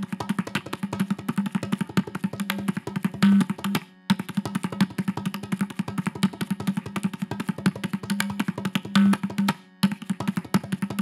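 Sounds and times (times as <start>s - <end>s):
hand drum fast strokes: 0.0s - 11.0s.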